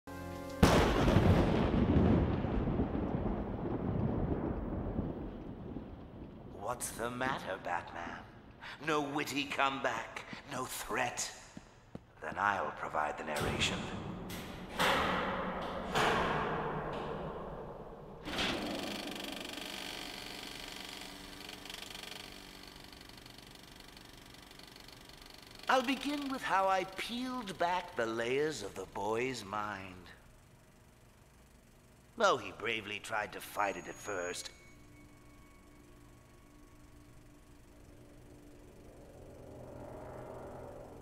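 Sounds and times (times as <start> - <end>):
deep dramatic rumble: 0.6 - 8.8, 36.9 - 41.0
film projector whirring: 18.3 - 40.2.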